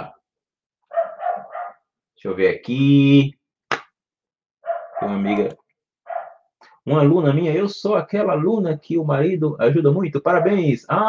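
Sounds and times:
dog barking: 0.9 - 1.9, 4.6 - 5.4, 6.0 - 6.5, 10.4 - 10.6.

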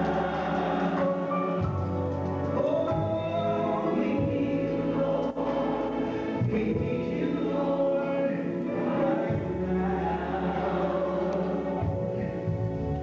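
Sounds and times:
gospel choir singing: 0.0 - 13.0.

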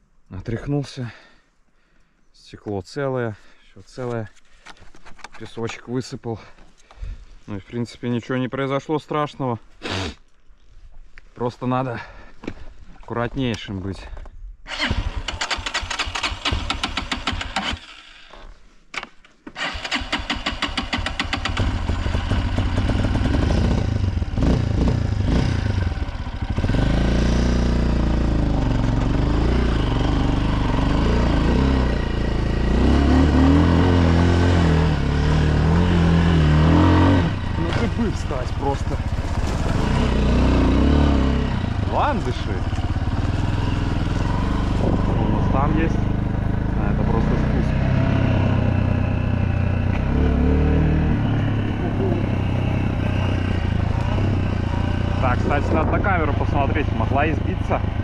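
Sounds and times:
dirt bike engine revving: 19.6 - 58.0.

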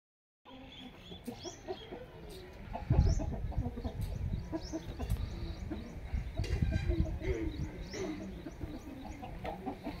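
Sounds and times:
chickens clucking: 0.5 - 10.0.

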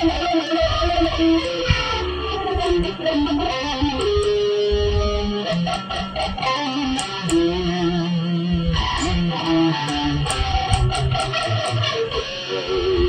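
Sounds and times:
electric guitar metal lead: 0.0 - 13.0.

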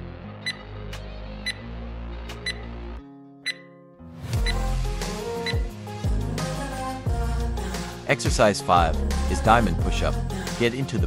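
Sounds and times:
workout music: 0.0 - 3.7, 4.3 - 11.0
high timer ticks: 0.4 - 0.6, 2.4 - 2.6, 3.4 - 3.7.

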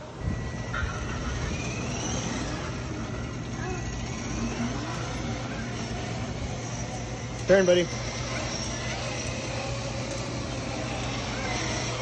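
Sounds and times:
toy car electric motor hum: 0.0 - 12.0
wheels rolling on concrete: 0.0 - 12.0.

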